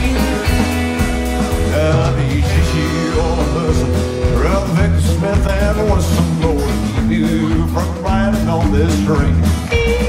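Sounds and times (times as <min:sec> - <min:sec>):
country rock band playing: 0:00.0 - 0:10.0
double bass pulse: 0:00.0 - 0:10.0.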